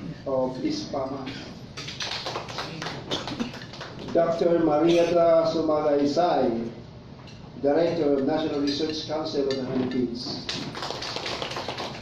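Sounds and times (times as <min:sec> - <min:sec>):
audience clapping: 0:01.8 - 0:04.3, 0:10.5 - 0:12.0.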